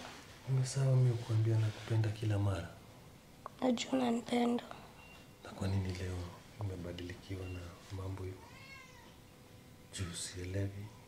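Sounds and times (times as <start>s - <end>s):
man speaking: 0.5s - 2.8s, 5.5s - 8.4s, 9.9s - 11.0s
cat meowing: 8.4s - 9.2s.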